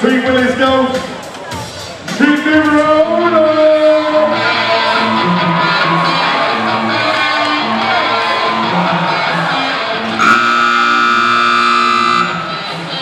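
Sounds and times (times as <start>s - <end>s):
loud horn blast: 10.2s - 12.6s.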